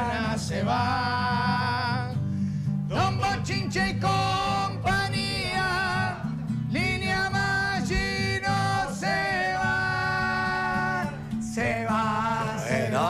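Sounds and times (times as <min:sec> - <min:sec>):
man singing long held notes: 0:02.9 - 0:13.0.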